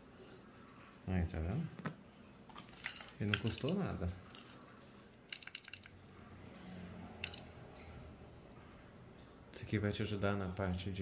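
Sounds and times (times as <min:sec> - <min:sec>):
short electronic beeps: 0:07.2 - 0:07.5.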